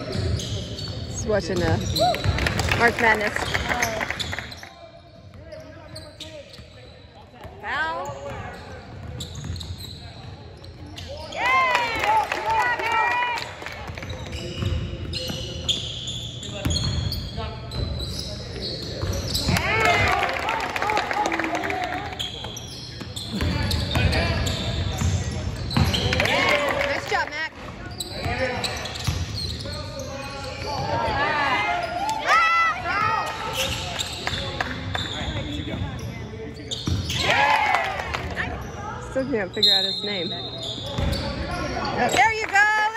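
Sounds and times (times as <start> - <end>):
sneakers squeaking on court: 0.0 - 11.8, 13.8 - 20.0, 22.0 - 26.6, 27.5 - 37.3, 38.3 - 42.5.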